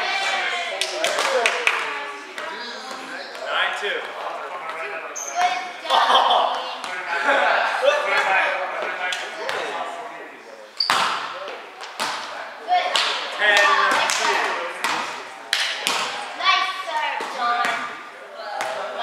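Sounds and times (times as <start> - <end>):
volleyball hits in echoing gym: 2.2 - 7.1, 10.8 - 19.0.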